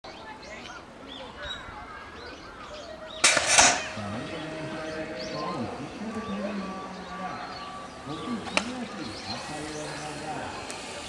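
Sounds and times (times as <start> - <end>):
metal starting gate slamming: 3.2 - 4.0.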